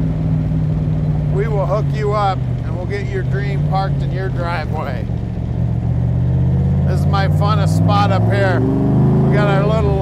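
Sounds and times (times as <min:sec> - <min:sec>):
car engine exhaust driving: 0:00.0 - 0:10.0.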